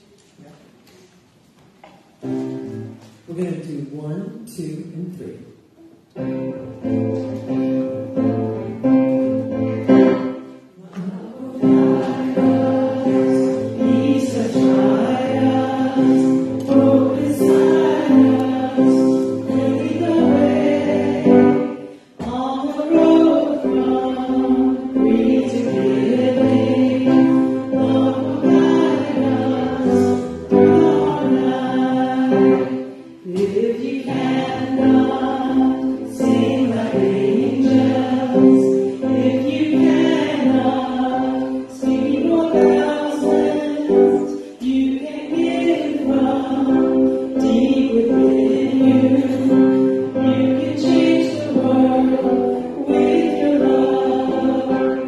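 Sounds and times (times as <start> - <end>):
acoustic guitar: 0.0 - 3.9, 4.5 - 55.0
congregation singing a hymn: 6.4 - 55.0
person singing into a microphone: 22.2 - 32.6, 33.2 - 55.0.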